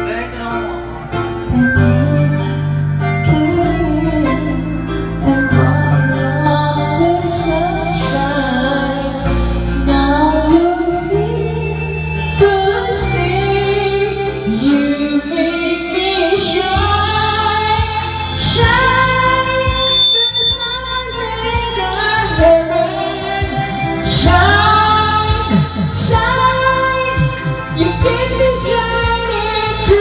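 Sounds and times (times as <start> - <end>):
instrumental accompaniment: 0.0 - 30.0
woman singing: 1.5 - 30.0.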